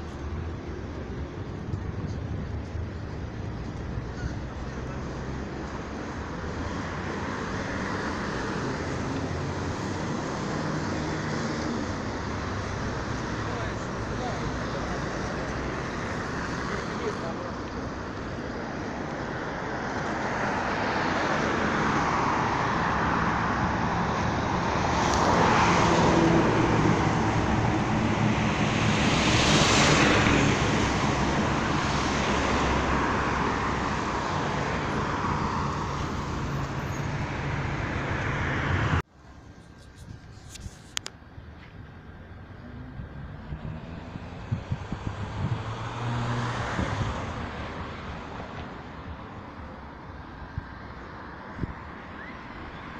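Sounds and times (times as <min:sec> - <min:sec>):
road traffic: 0:00.0 - 0:52.9
vehicles passing close by: 0:00.0 - 0:52.9.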